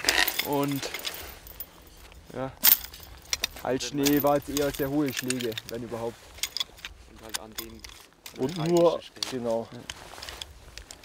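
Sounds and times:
light outdoor hiss: 0:00.0 - 0:11.0
metal poles clicking together: 0:02.1 - 0:11.0.

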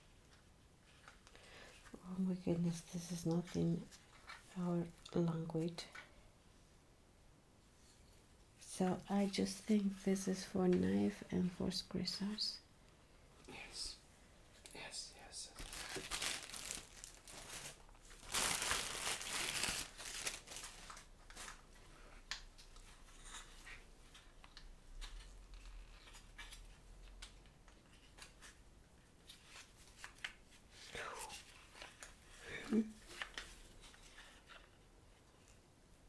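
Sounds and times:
plastic bag crinkling: 0:15.6 - 0:21.6.

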